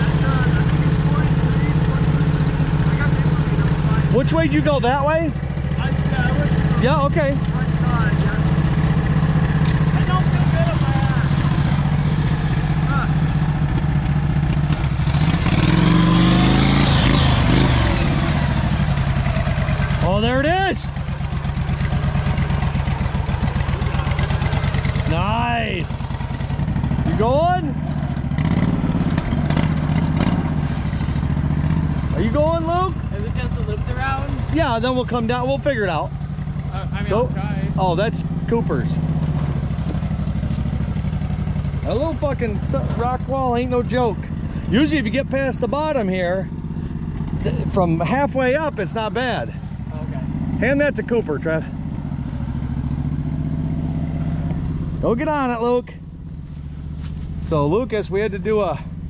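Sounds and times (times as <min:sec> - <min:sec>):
tractor engine under load: 0:00.0 - 0:59.0.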